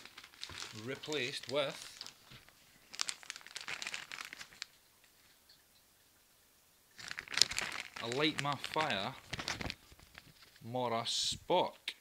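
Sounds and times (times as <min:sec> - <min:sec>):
plastic bag crinkling: 0:00.0 - 0:04.8, 0:06.9 - 0:10.8.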